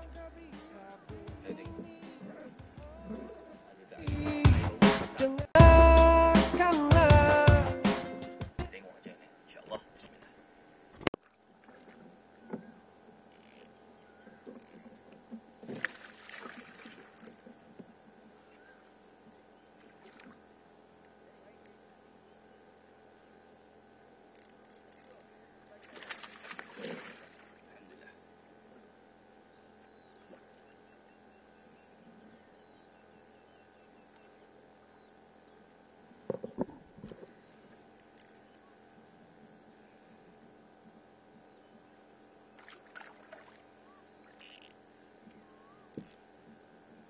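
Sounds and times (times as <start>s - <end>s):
fishing tackle clicking and rattling: 24.4s - 25.3s.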